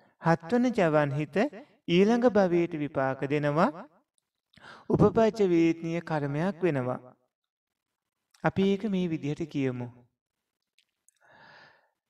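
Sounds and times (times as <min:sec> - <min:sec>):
faint breath drawn in: 0:11.2 - 0:12.0.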